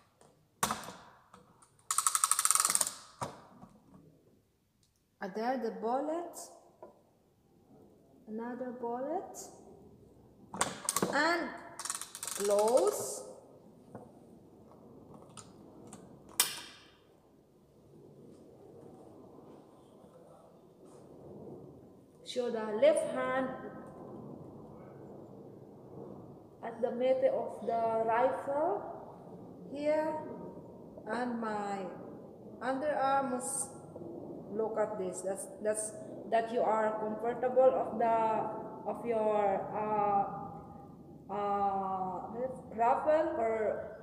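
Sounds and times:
air rifle breech clicking: 0:01.9 - 0:03.1.

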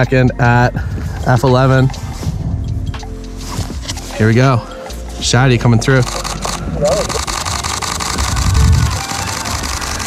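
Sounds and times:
camera shutter burst: 0:06.0 - 0:10.0.

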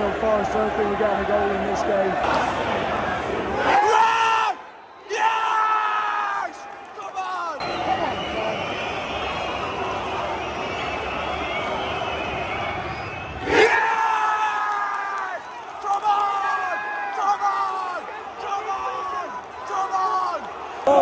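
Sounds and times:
crowd cheering loudly: 0:00.0 - 0:21.0
whistling: 0:07.6 - 0:13.7.

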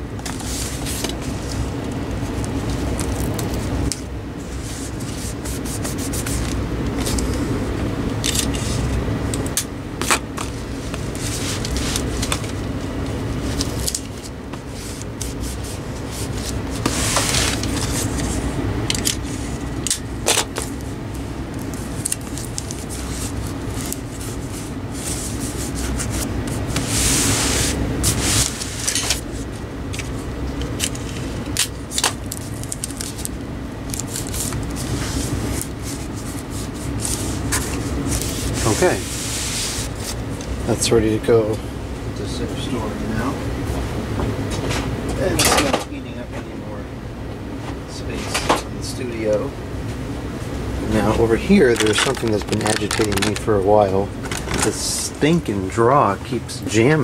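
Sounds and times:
hands rubbing tape on cardboard: 0:02.4 - 0:07.4, 0:10.0 - 0:12.7, 0:13.4 - 0:33.3, 0:33.9 - 0:40.5
tape tearing off dispenser: 0:08.2 - 0:08.6, 0:30.7 - 0:34.9, 0:51.6 - 0:53.5
tape dispenser cutting clicks: 0:51.7 - 0:53.5.

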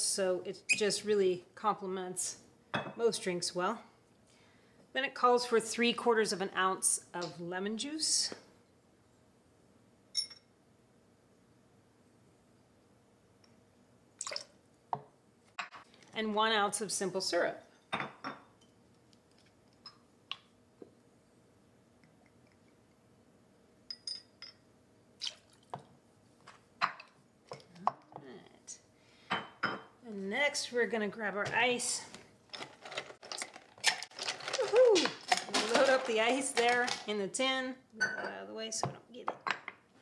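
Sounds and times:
ice cubes clinking into metal tin: 0:32.5 - 0:37.1.

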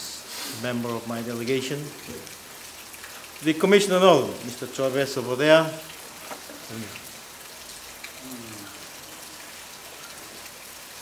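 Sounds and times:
background hiss: 0:00.0 - 0:11.0
faint voice: 0:08.2 - 0:08.8.

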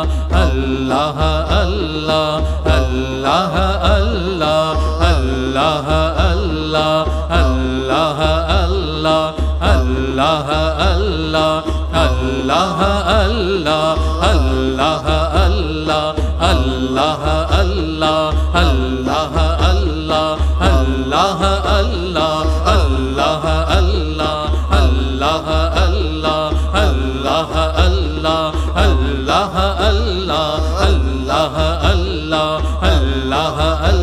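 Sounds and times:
deep regular drum beat: 0:00.0 - 0:34.0
voices singing devotional chant: 0:00.0 - 0:34.0.

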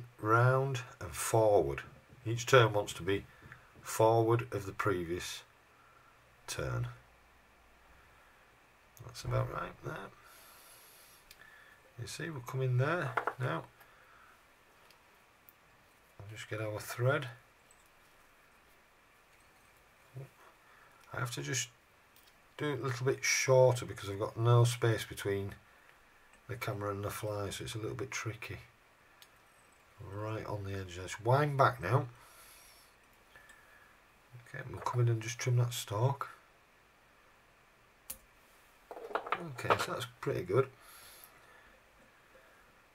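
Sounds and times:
faint hiss: 0:00.0 - 0:42.9.

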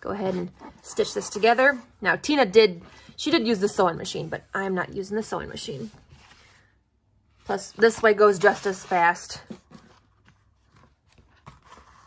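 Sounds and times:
paper rustling: 0:07.5 - 0:12.0.

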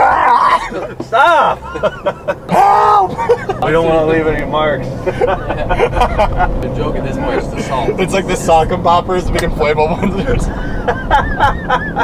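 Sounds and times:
low background rumble: 0:00.0 - 0:12.0
young men talking and laughing: 0:00.0 - 0:12.0.

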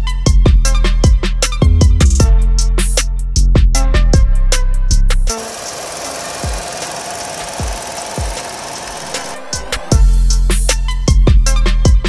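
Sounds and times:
car engine idling: 0:05.3 - 0:10.2.

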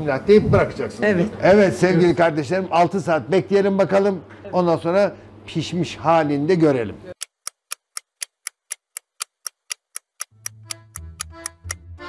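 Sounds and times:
clock ticking: 0:07.1 - 0:11.9
music: 0:10.3 - 0:12.0.

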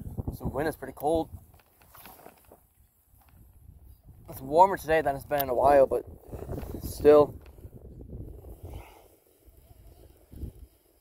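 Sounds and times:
wind buffeting microphone: 0:00.0 - 0:01.6, 0:03.1 - 0:11.0.

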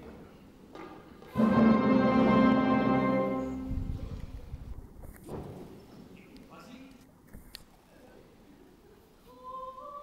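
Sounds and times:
orchestra playing loud chord: 0:01.4 - 0:03.9.

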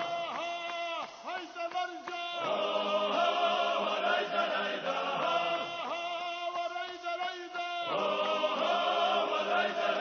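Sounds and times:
choir chanting in harmony: 0:02.4 - 0:10.0.

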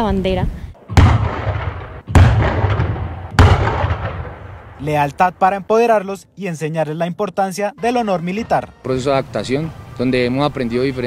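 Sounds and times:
pyrotechnic blasts with echoing rumble: 0:00.8 - 0:05.5.

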